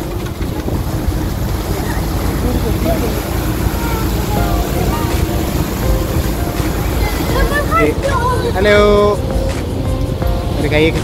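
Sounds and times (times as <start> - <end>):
boat engine rumble: 0.0 - 11.0
rush of boat wake: 0.0 - 11.0
voices chattering: 0.0 - 11.0
wind on microphone: 0.0 - 11.0
people calling out: 1.6 - 10.2.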